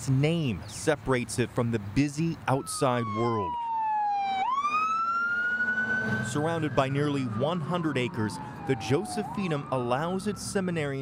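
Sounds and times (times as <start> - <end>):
siren wailing: 2.5 - 11.0.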